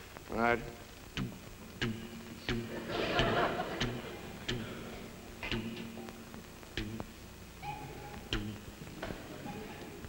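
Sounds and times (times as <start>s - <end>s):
steady low hum: 0.0s - 10.0s
clicks imitating heartbeat: 1.0s - 9.1s.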